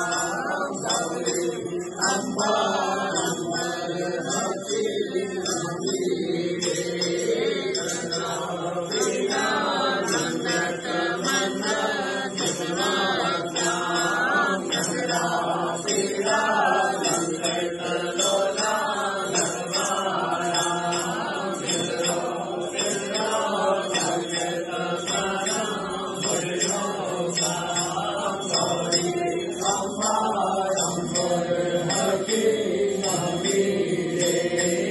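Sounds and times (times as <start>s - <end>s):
group chanting a hymn: 0.0s - 34.9s.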